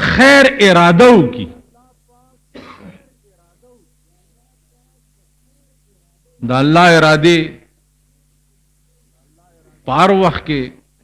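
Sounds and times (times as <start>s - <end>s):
man clearing throat: 2.5s - 3.2s.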